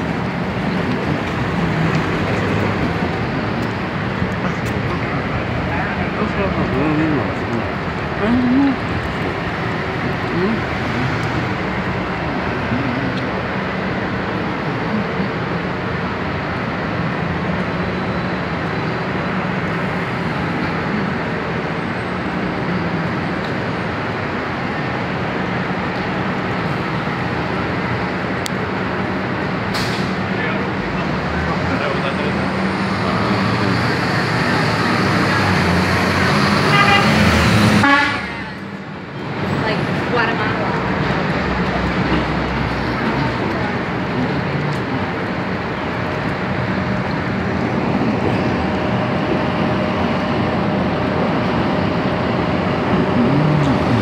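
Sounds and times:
city traffic noise: 0.0s - 54.0s
car horn toots: 36.7s - 37.2s, 37.8s - 38.5s.

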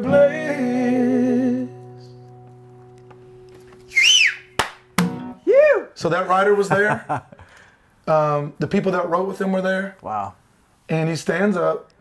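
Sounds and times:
acoustic guitar chord ringing: 0.0s - 5.5s
person whooping: 3.9s - 4.5s, 5.4s - 6.0s
person whistling: 3.9s - 4.6s
sharp slaps: 4.6s - 5.2s.

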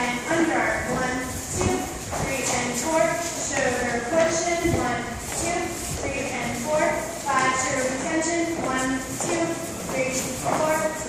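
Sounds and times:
dance music: 0.0s - 11.0s.

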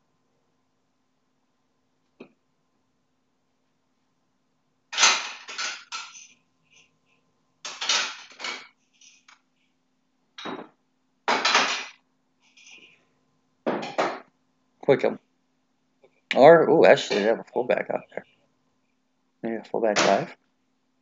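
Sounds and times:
clattering and clinking: 5.0s - 6.3s, 7.7s - 9.2s.

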